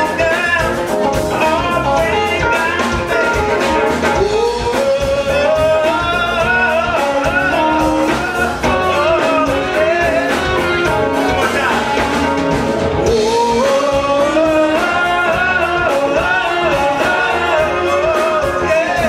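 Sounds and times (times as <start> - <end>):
live band playing: 0.0 - 19.0
person singing: 0.0 - 19.0.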